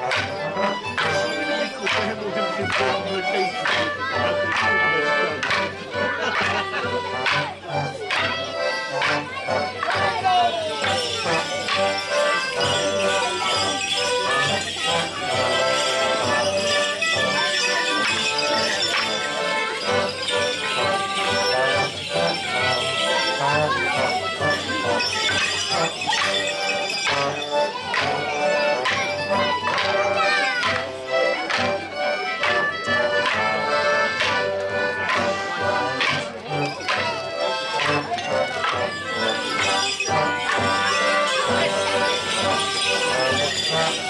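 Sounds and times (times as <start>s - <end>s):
crowd chatter: 0.0s - 44.0s
leg bells jingling: 0.0s - 44.0s
squeezebox folk tune: 0.0s - 44.0s.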